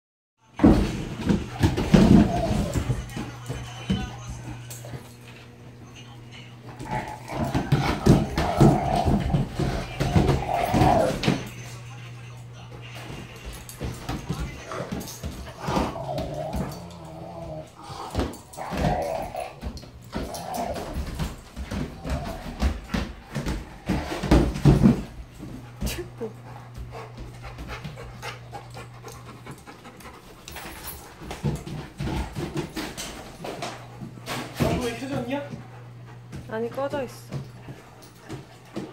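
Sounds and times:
dogs panting: 0:01.0 - 0:38.9
dogs vocalizing: 0:01.3 - 0:12.0, 0:12.9 - 0:24.6.

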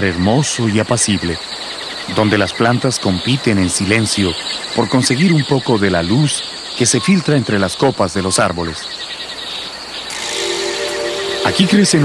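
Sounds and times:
insects chirring: 0:00.0 - 0:12.0
low musical chord: 0:10.2 - 0:12.0.

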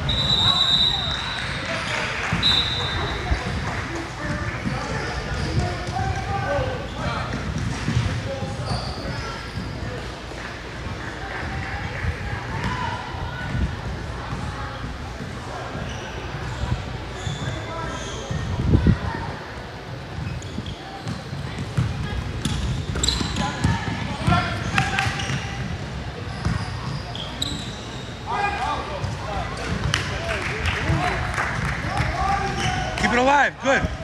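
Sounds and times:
voices in background: 0:00.0 - 0:34.0
basketball bouncing: 0:21.0 - 0:25.7.

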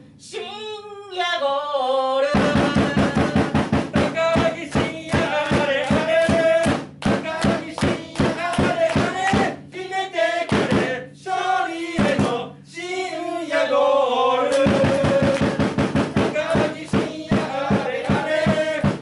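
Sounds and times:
drum beat: 0:02.4 - 0:12.5, 0:14.5 - 0:19.0
crowd chanting: 0:02.4 - 0:19.0.

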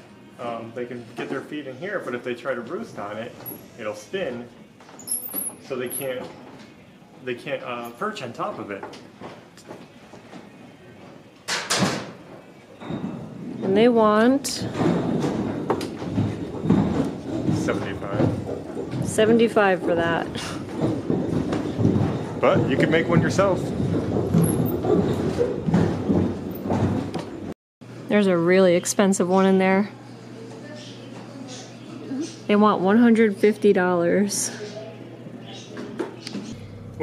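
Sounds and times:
wooden knocks and thuds: 0:14.6 - 0:27.5.

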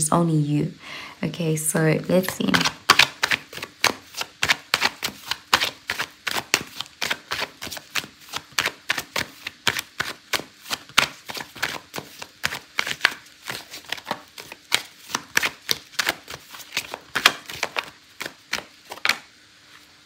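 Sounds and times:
cards being shuffled: 0:02.2 - 0:19.9.

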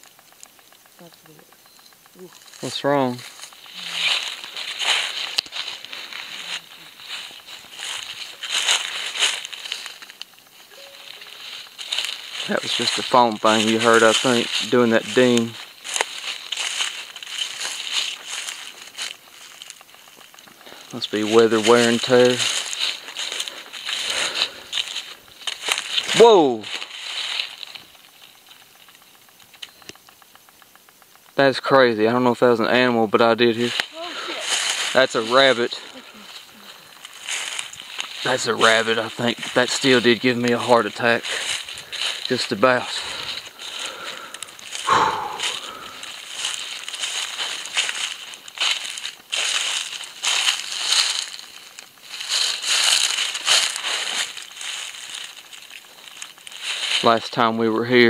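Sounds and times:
faint ticks and patter: 0:00.0 - 0:58.0
rustling in dry vegetation: 0:00.0 - 0:58.0.

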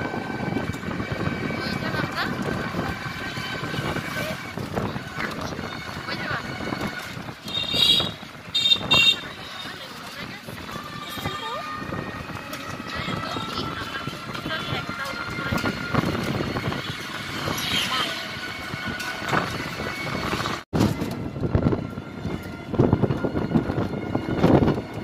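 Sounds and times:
road and vehicle noise: 0:00.0 - 0:25.0
people's voices: 0:00.6 - 0:07.8, 0:08.8 - 0:18.5.

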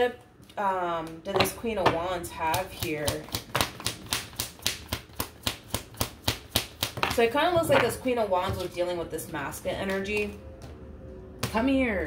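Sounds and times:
cards being shuffled: 0:02.7 - 0:07.9.

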